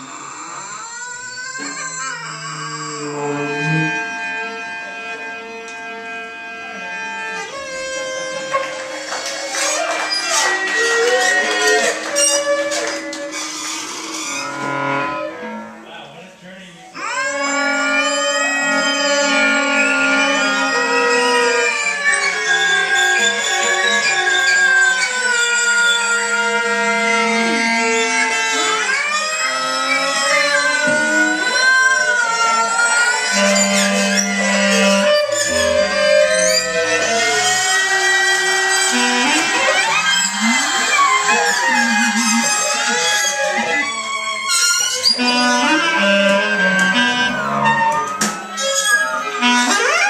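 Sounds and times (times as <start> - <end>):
voice clarinet and cello improvising: 0.0 - 16.0, 16.8 - 50.0.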